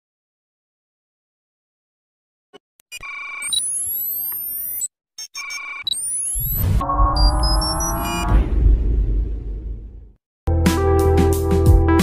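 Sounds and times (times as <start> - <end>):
high electronic beeping tones: 2.9 - 8.3.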